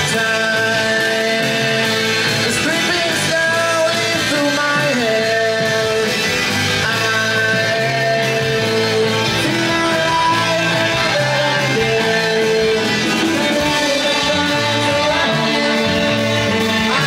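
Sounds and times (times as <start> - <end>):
drums: 0.0 - 17.0
electric guitars: 0.0 - 17.0
person singing: 0.0 - 17.0.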